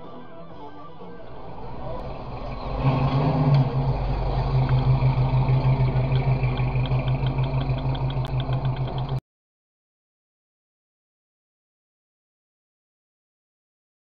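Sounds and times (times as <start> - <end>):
car engine with deep exhaust: 1.5 - 9.2.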